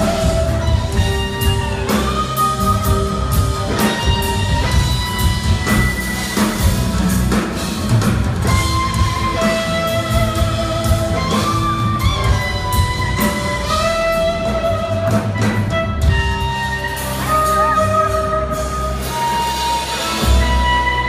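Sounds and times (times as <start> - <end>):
electric guitar lead bending notes: 0.0 - 21.0
live band playing: 0.0 - 21.0.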